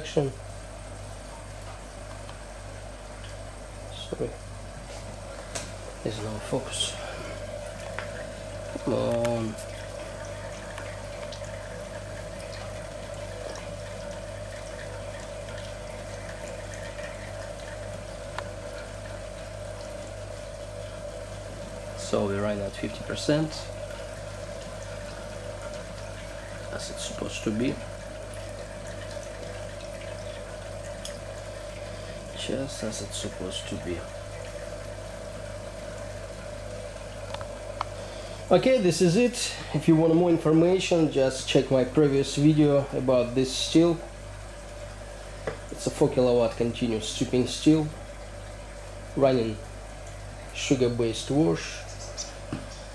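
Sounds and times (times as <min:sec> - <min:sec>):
liquid trickling into cylinder: 0:00.0 - 0:52.9
small ticks: 0:15.5 - 0:18.9.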